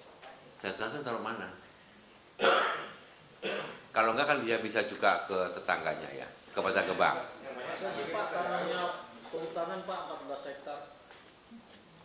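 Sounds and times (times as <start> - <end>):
person clearing throat: 2.4 - 3.8.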